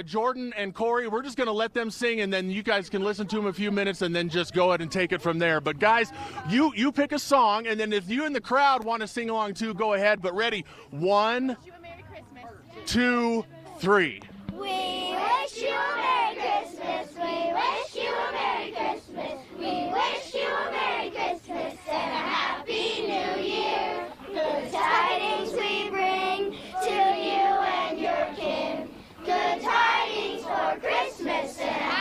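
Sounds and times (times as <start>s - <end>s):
children's choir singing: 14.6s - 32.0s.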